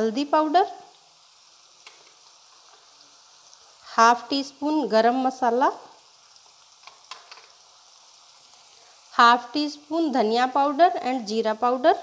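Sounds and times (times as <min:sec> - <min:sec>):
onion sizzling in pan: 0:00.0 - 0:12.0.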